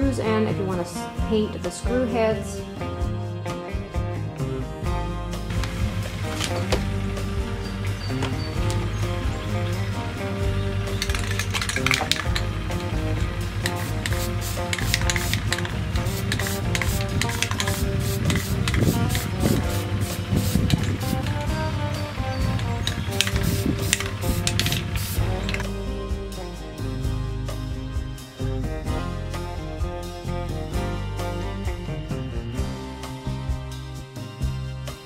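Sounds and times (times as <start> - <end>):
background music: 0.0 - 35.0
spray paint can hissing: 10.8 - 25.7.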